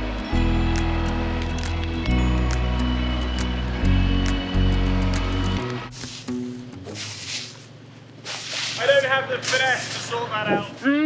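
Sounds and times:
footsteps through grass and leaves: 0:05.9 - 0:10.3.

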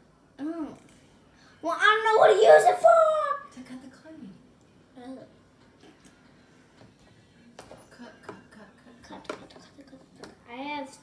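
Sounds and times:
child speaking: 0:01.6 - 0:03.5, 0:10.4 - 0:11.0.

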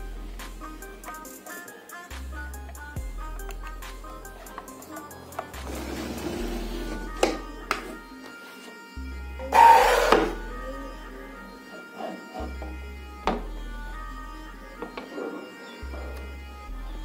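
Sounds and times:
instrumental background music: 0:00.0 - 0:17.0.

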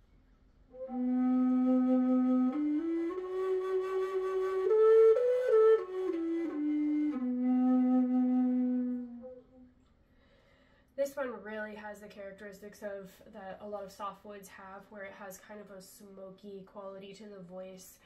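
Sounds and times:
wooden flute playing slow phrase: 0:00.7 - 0:09.8.

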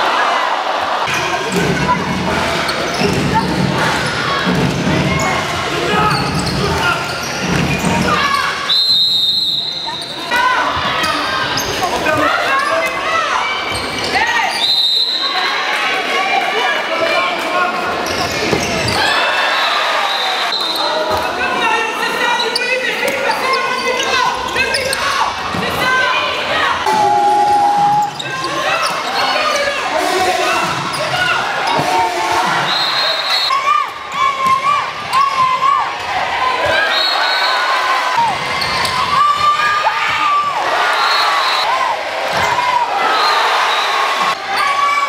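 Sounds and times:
players and crowd calling out: 0:00.0 - 0:45.0
referee's whistle blast: 0:08.7 - 0:10.0, 0:26.9 - 0:28.2, 0:32.6 - 0:33.7
shoes squeaking: 0:18.0 - 0:19.1.

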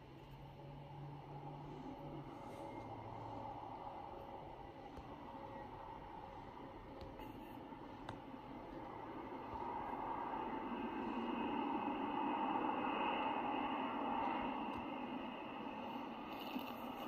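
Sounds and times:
distant jet engines whining: 0:00.0 - 0:17.0.

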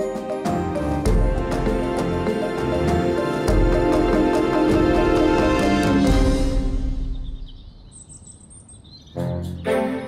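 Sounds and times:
theme music: 0:00.0 - 0:07.6, 0:09.2 - 0:10.0
birds chirping and trilling: 0:00.0 - 0:10.0.

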